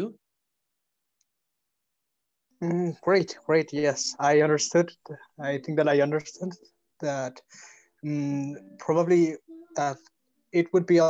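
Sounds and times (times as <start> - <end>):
man's voice: 2.6 - 7.4, 8.0 - 11.0.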